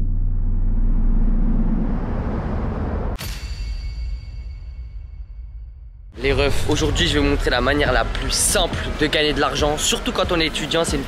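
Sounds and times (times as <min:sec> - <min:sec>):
deep bass rumble: 0:00.0 - 0:03.2
hissing riser: 0:00.0 - 0:03.2.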